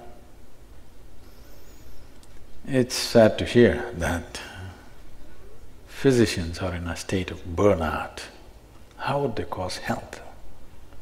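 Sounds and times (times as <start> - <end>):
light hiss: 0.0 - 7.1
faint high-pitched whine: 0.0 - 11.0
steady low hum: 0.0 - 11.0.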